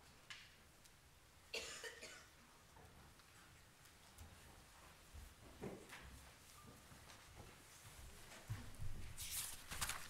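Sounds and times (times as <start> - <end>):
person coughing: 1.6 - 2.3.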